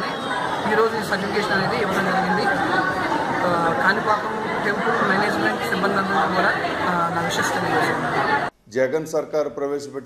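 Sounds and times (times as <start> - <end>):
people chattering: 0.0 - 8.6.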